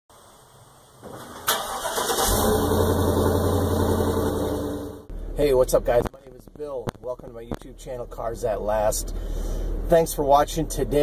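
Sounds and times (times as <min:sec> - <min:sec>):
truck engine starting: 0:01.1 - 0:05.4.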